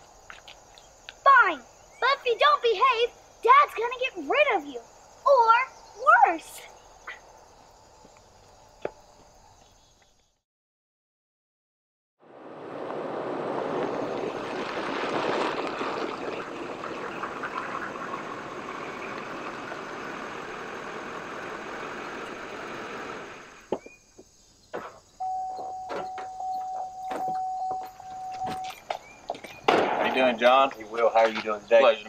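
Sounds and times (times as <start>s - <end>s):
tyres rolling on gravel: 12.3s - 32.0s
pickup truck engine: 12.6s - 23.7s
steady high tone: 25.2s - 28.8s
footsteps: 25.6s - 31.6s.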